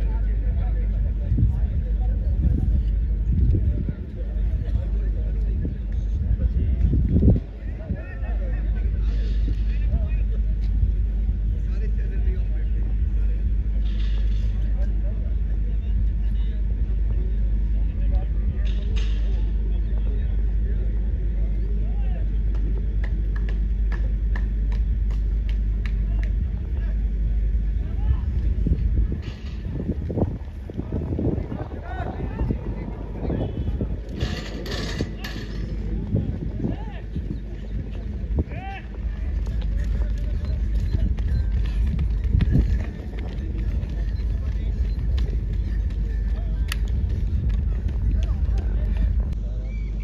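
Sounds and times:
faint voices: 0.0s - 50.0s
wind rumbling on microphone: 0.0s - 50.0s
running footsteps on track: 9.4s - 49.4s.

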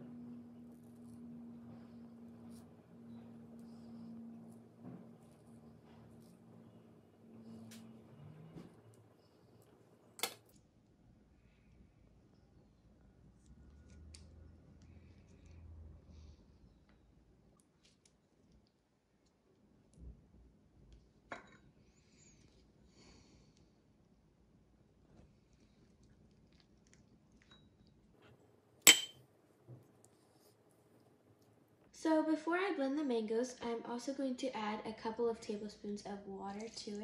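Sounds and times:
spoon clinking ceramic bowl: 28.9s - 29.1s.

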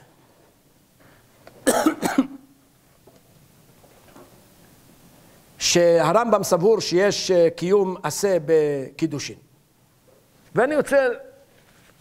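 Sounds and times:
man coughing: 1.6s - 2.5s.

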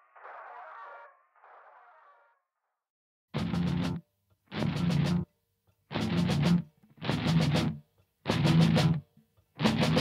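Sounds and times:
heavy metal riff: 5.9s - 9.0s, 9.6s - 10.0s.

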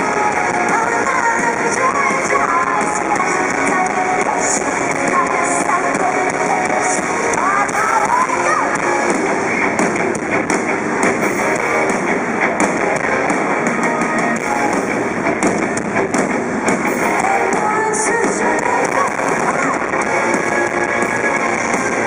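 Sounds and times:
live rock band playing loudly: 0.0s - 22.0s.

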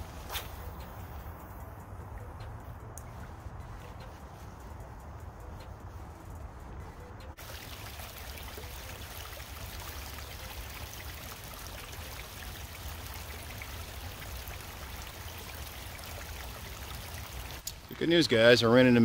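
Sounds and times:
river water flowing: 7.4s - 17.7s.

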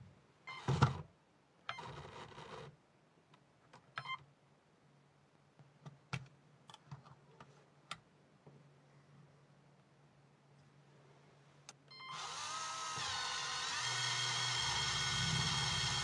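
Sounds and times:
small electric motor whirring: 12.1s - 16.0s.

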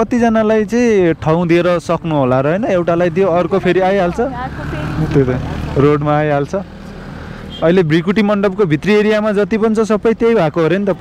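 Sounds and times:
man talking: 0.0s - 4.3s, 5.1s - 6.7s, 7.6s - 11.0s
road noise: 0.0s - 11.0s.

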